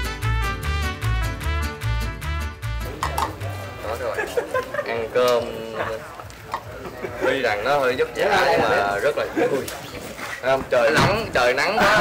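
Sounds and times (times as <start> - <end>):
upbeat swing music: 0.0 - 6.0
people chattering: 2.8 - 12.0.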